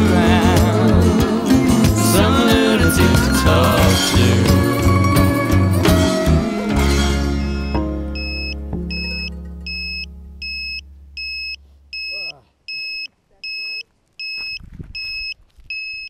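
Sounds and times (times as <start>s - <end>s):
song closing chords: 0.0s - 11.2s
drone buzzer beeping: 7.5s - 16.0s.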